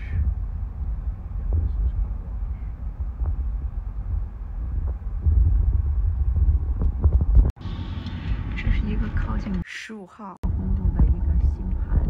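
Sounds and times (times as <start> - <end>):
car cabin rumble: 0.0 - 9.6, 10.4 - 12.0.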